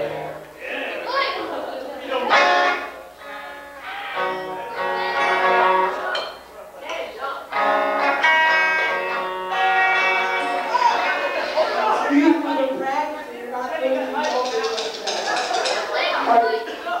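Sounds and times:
guitar notes and chords: 0:00.0 - 0:01.2, 0:02.1 - 0:13.0.

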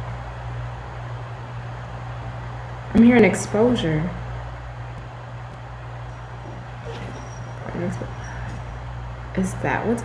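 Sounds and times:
room noise hum: 0:00.0 - 0:10.0.

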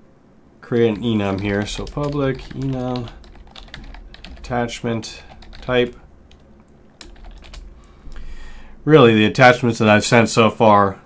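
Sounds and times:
keyboard keystrokes: 0:01.3 - 0:04.7, 0:05.3 - 0:06.4, 0:07.0 - 0:07.7.

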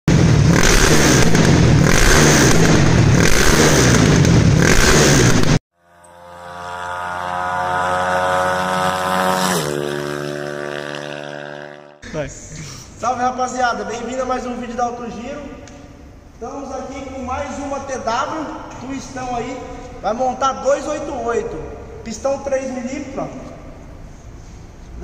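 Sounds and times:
motorcycle engine revving: 0:00.1 - 0:12.0
sustained intro tone: 0:05.8 - 0:12.0.

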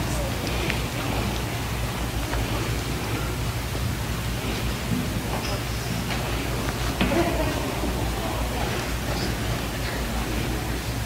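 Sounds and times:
low hum: 0:00.0 - 0:11.0
steady hiss: 0:00.0 - 0:11.0.

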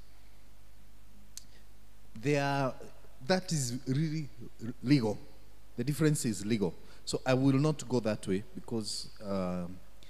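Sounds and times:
low microphone hum: 0:00.0 - 0:10.0.

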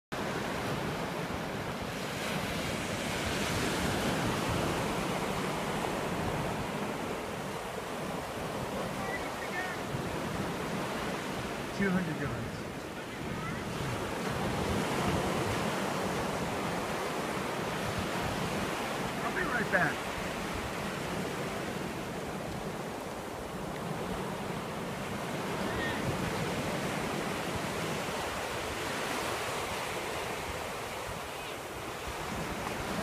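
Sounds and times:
small waves breaking on beach: 0:00.1 - 0:33.0.

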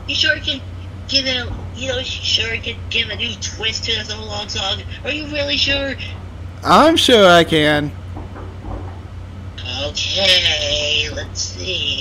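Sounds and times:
low electrical hum: 0:00.0 - 0:12.0
man speaking: 0:06.6 - 0:08.0.

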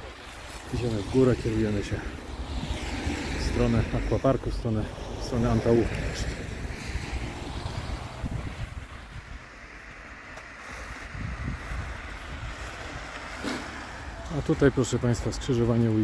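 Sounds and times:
wind rumbling on microphone: 0:00.0 - 0:14.2
car tyres hissing through slush: 0:00.0 - 0:14.6.

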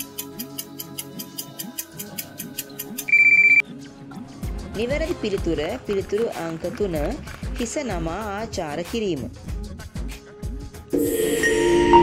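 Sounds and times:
countdown timer ticking: 0:00.0 - 0:03.6
soft background music: 0:00.0 - 0:12.0
pulsing electronic ring: 0:03.1 - 0:03.6.

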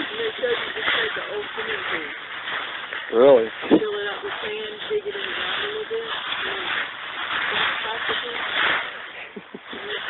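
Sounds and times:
dry leaves rustling and crackling: 0:00.0 - 0:10.0.

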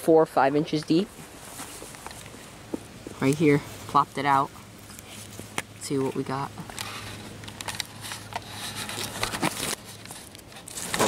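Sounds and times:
loose soil crackling and pattering: 0:00.0 - 0:11.0
rustling: 0:00.9 - 0:11.0.

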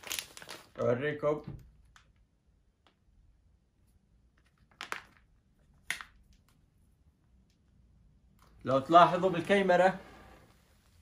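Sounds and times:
plastic bag crinkling: 0:00.0 - 0:00.8.

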